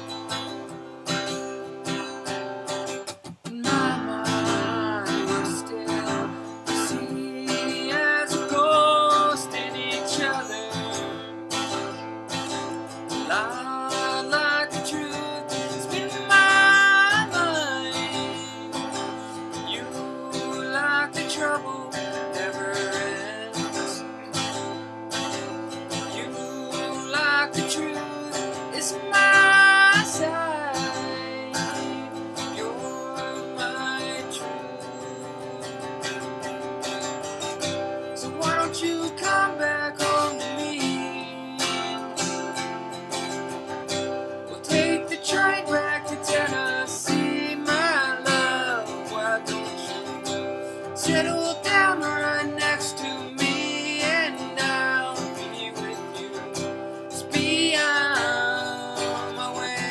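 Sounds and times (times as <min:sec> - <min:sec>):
strummed acoustic guitar: 0:00.0 - 0:59.9
man singing: 0:03.4 - 0:36.4, 0:37.2 - 0:59.9.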